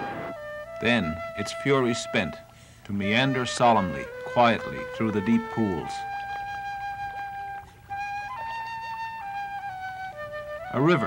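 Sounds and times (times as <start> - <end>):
solo flute long notes: 0.0 - 11.0.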